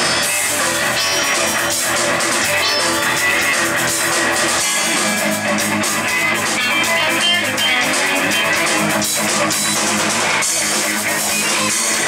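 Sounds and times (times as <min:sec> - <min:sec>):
bass guitar: 0:00.0 - 0:12.0
drum kit: 0:00.0 - 0:12.0
electric guitars: 0:00.0 - 0:12.0.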